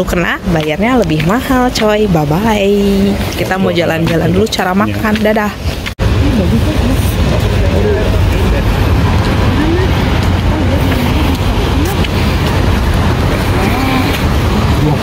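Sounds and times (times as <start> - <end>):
low street rumble: 0.0 - 15.0
voices talking: 0.0 - 15.0.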